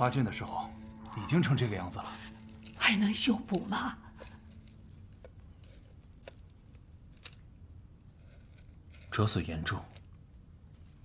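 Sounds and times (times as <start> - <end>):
metal ornaments clinking: 0.0 - 11.0.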